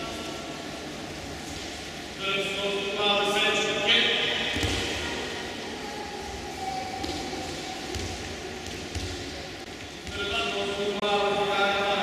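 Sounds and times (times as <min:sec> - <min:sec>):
murmur of sports hall: 0:00.0 - 0:12.0.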